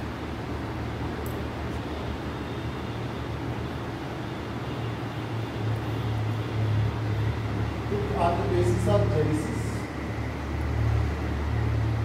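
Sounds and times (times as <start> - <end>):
constant even noise: 0.0 - 12.0
low machine hum: 0.0 - 12.0.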